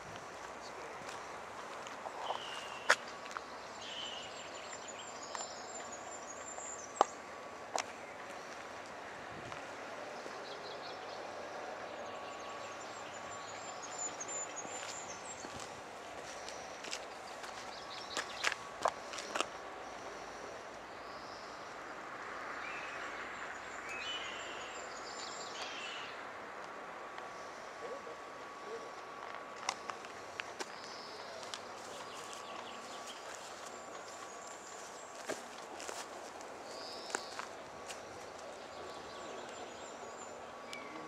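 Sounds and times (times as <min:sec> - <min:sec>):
footsteps on tarmac: 0:00.0 - 0:10.5, 0:12.3 - 0:20.4, 0:28.4 - 0:39.9
birds singing: 0:00.4 - 0:08.7, 0:09.9 - 0:22.0, 0:22.6 - 0:26.3, 0:29.8 - 0:41.0.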